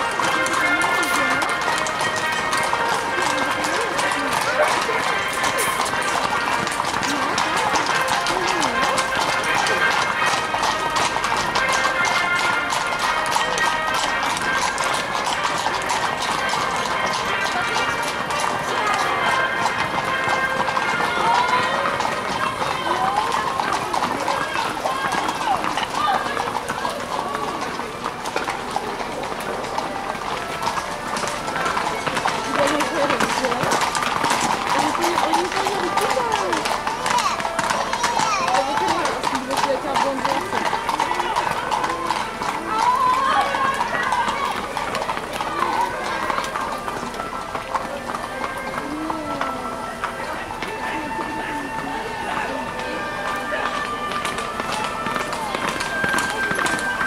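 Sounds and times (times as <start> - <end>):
horse hooves clip-clopping on asphalt: 0.0 - 57.0
people talking: 0.0 - 57.0.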